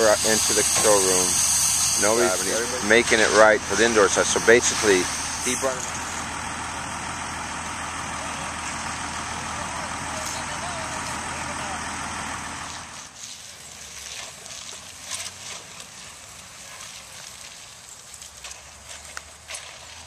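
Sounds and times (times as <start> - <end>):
truck engine idling: 0.0 - 15.0.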